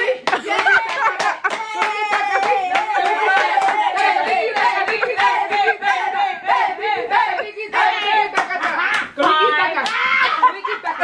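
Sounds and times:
hand claps: 0.0s - 5.7s, 8.3s - 10.0s
women chanting and singing: 0.0s - 11.0s.

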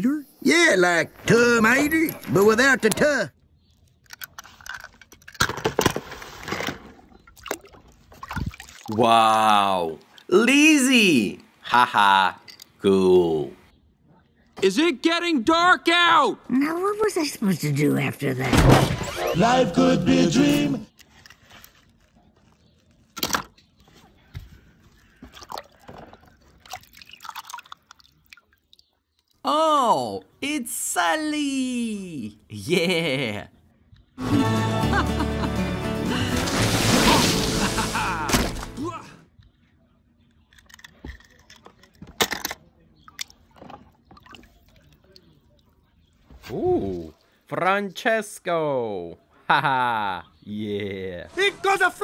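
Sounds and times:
faint water splashes: 7.1s - 10.4s, 24.9s - 29.5s, 43.1s - 47.5s
voices: 8.9s - 20.9s
film soundtrack music: 34.2s - 39.2s.

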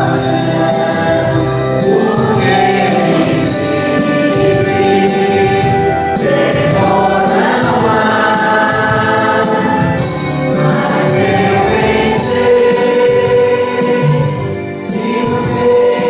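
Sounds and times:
electronic keyboard with beat: 0.0s - 16.0s
voices singing a hymn: 0.0s - 16.0s.

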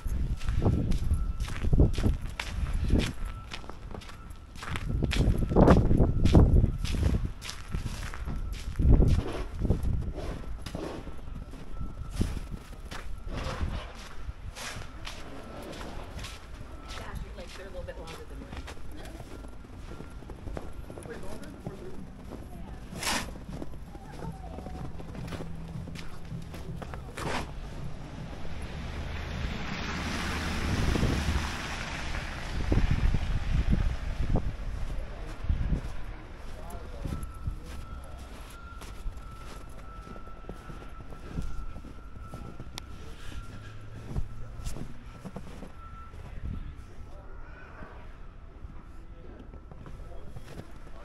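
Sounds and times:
wind buffeting microphone: 0.0s - 15.0s, 18.0s - 42.8s
faint high beep: 0.0s - 31.1s, 34.7s - 51.0s
footsteps through snow: 0.0s - 31.7s, 34.2s - 47.0s, 49.8s - 51.0s
vehicle traffic rumble: 0.0s - 51.0s
tyres hissing on snowy street: 27.0s - 35.1s.

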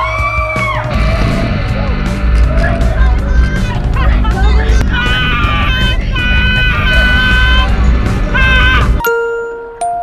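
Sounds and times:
riders screaming: 4.9s - 9.0s
chime-like notes: 9.0s - 10.0s.

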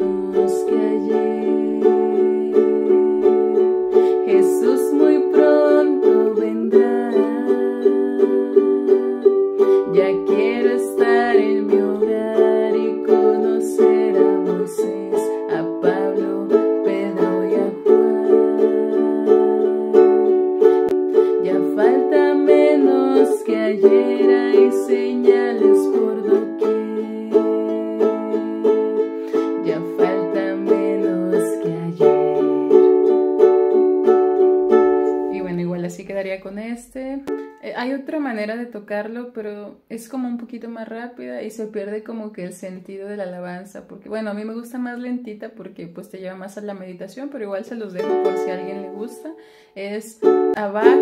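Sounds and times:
ukulele strumming chords: 0.0s - 36.0s, 37.2s - 37.6s, 48.0s - 49.5s, 50.1s - 51.0s.

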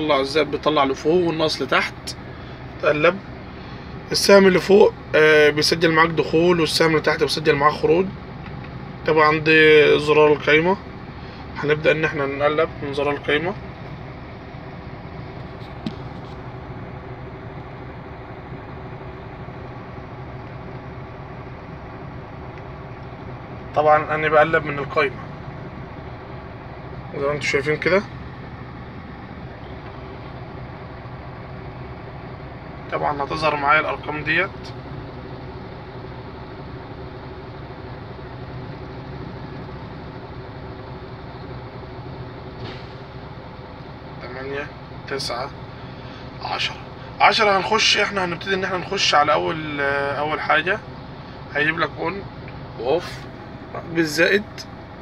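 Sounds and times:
diesel truck engine idling: 0.0s - 55.0s.

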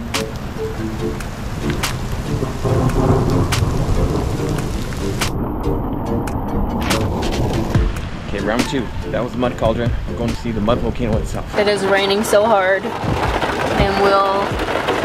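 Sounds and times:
soft music notes: 0.0s - 11.5s
steady low rumble: 0.0s - 11.8s
heavy rain falling: 0.0s - 15.0s
raindrops hitting microphone: 0.0s - 15.0s.

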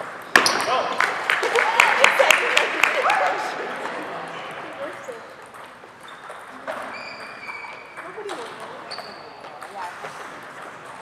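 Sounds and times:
shoe squeak: 6.0s - 9.6s.

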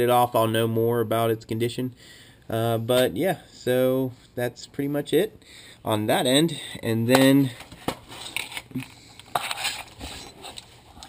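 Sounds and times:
soft rustling and scraping: 7.4s - 11.0s.

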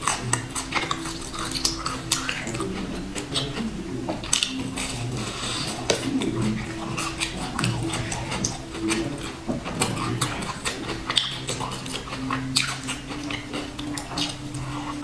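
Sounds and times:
close chewing with crackles: 0.0s - 15.0s
low sustained tones: 0.0s - 15.0s.

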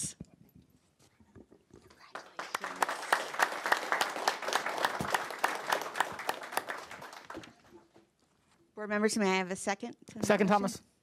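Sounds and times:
audience applause: 2.1s - 7.7s.

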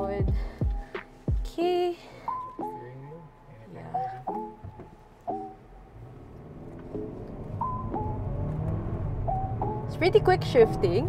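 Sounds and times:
background music with light melody: 0.0s - 11.0s
car engine accelerating hard: 5.6s - 11.0s.

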